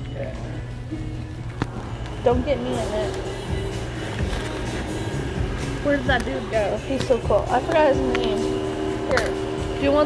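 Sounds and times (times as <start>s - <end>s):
background music: 0.0s - 10.0s
restaurant din: 0.0s - 10.0s.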